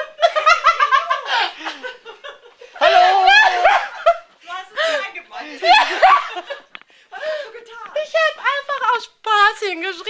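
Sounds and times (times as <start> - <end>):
women laughing: 0.0 - 7.7.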